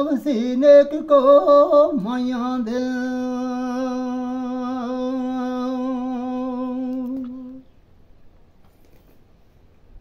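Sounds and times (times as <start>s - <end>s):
elderly man singing long note: 0.0s - 7.7s.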